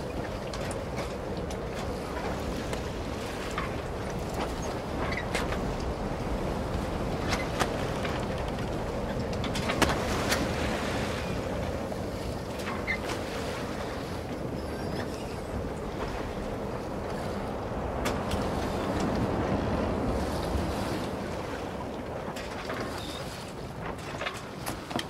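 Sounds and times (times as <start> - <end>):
waves washing: 0.0 - 25.0
wind: 0.0 - 25.0.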